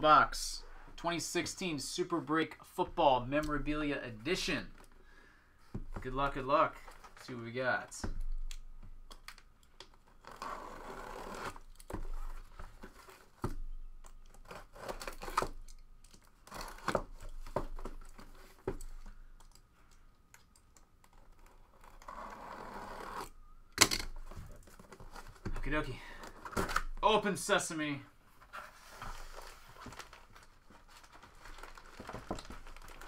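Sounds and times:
tape tearing off cardboard box: 9.9s - 15.8s, 16.4s - 18.6s, 21.1s - 24.4s.

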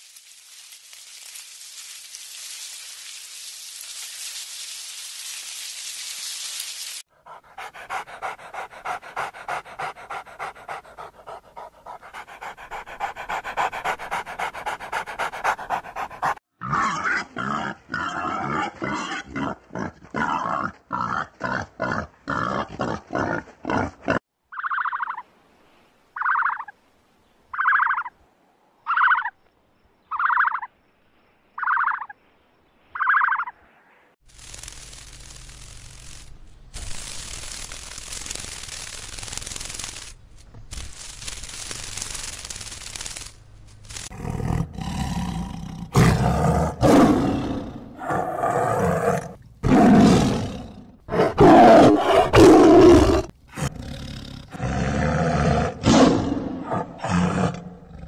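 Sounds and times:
steady hiss: 0.0s - 15.6s, 34.2s - 44.1s
dog panting: 7.1s - 16.4s
pig grunting: 7.2s - 24.2s, 44.1s - 58.0s.

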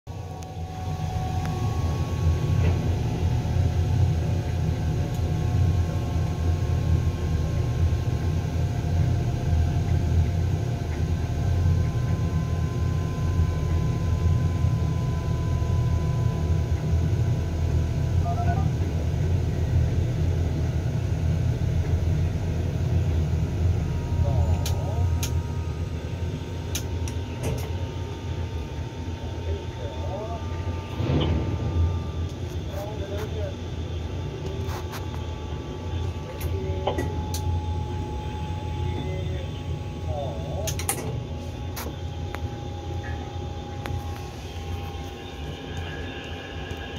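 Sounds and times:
crane machinery rumbling: 0.1s - 46.9s
faint whining tones: 0.1s - 46.9s.

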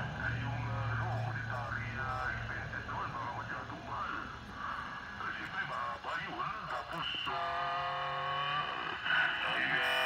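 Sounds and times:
radio speech over loudspeaker: 0.2s - 7.4s.

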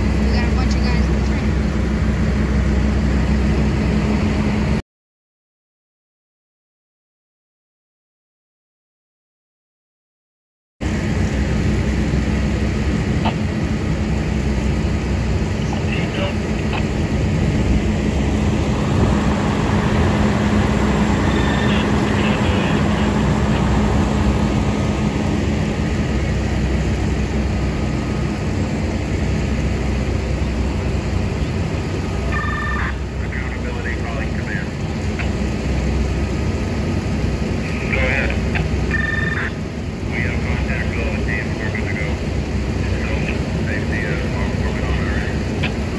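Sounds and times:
diesel engine running pump: 0.0s - 4.8s, 10.8s - 45.9s
faint voices: 21.1s - 23.9s, 32.2s - 35.1s, 37.6s - 38.6s, 39.4s - 42.2s.

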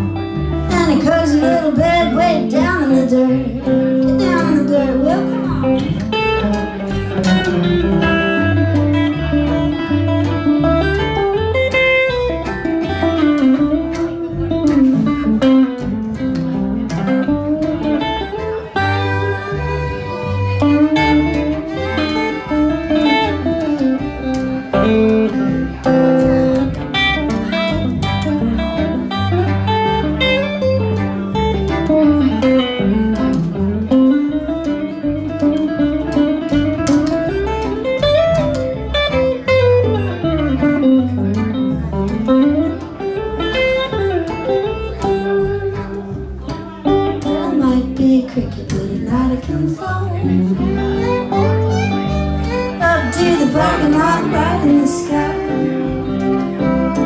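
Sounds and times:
blues instrumental band: 0.0s - 57.0s
upright bass pulsing: 0.0s - 57.0s
sliding melody line: 51.2s - 57.0s.

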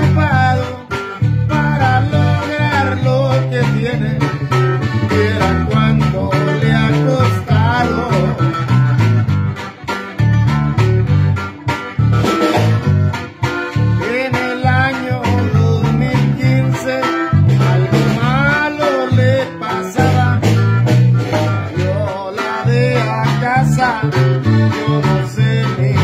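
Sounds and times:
acoustic guitar playing: 0.0s - 26.0s.

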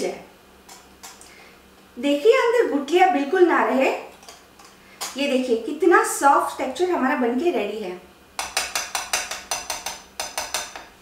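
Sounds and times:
whisk clinking against glass bowl: 8.4s - 10.9s.

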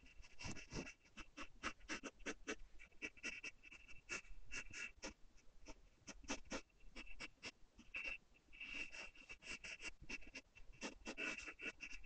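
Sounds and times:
pencil sketching on paper: 0.0s - 12.0s.

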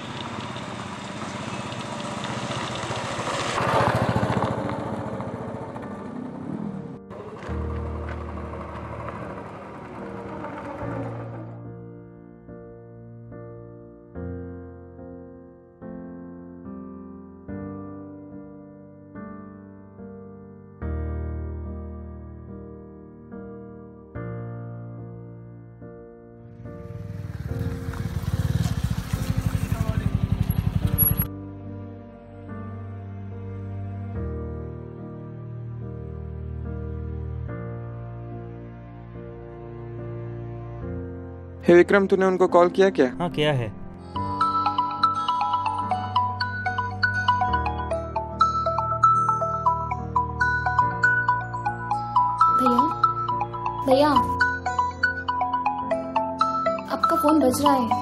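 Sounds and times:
motorcycle passing by: 0.0s - 11.8s, 26.5s - 31.3s
soft piano music: 5.8s - 58.0s.

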